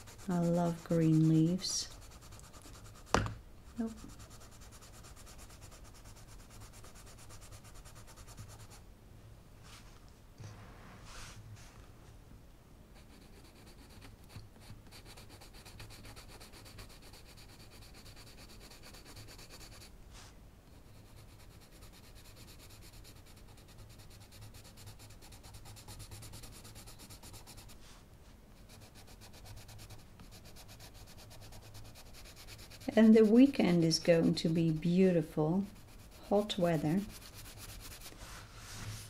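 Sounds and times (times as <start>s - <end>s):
coloured pencil scratching on paper: 0.0s - 8.8s, 13.0s - 19.9s, 20.7s - 27.8s, 28.6s - 38.9s.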